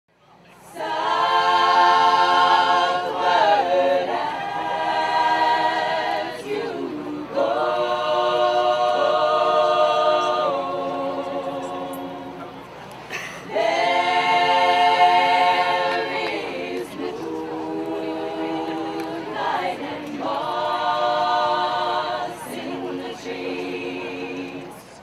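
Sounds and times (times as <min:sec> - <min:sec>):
women singing a cappella: 0:00.6 - 0:12.4, 0:13.4 - 0:24.9.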